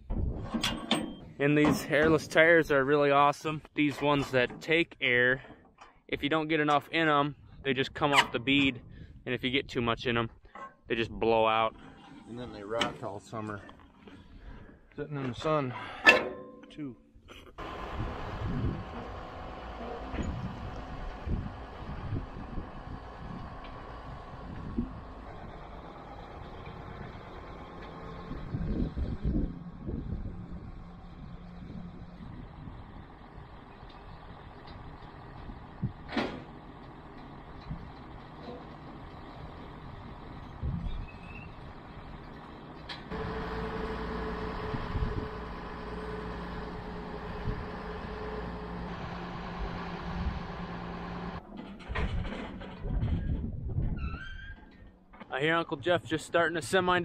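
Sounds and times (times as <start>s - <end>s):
tractor diesel engine running: 17.6s - 53.1s.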